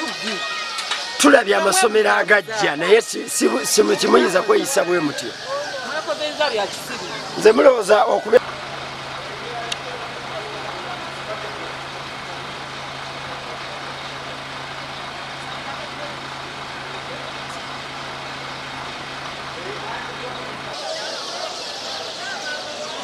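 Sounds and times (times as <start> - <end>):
crowd chatter: 0.0 - 23.0
faint voices: 0.0 - 23.0
fire truck engine humming: 0.0 - 23.0.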